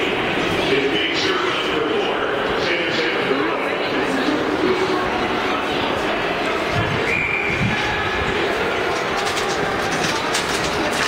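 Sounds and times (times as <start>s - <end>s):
crowd talking: 0.0s - 11.0s.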